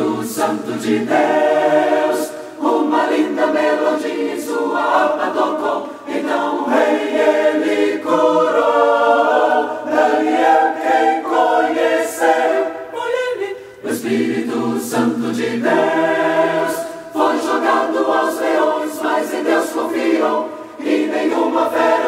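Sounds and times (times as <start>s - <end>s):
choir singing a cappella: 0.0s - 22.0s.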